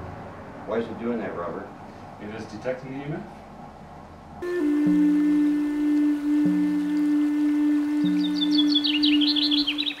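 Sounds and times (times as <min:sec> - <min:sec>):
long held low note: 0:04.4 - 0:10.0
softer lower note: 0:04.4 - 0:10.0
high bird chirps: 0:07.9 - 0:10.0.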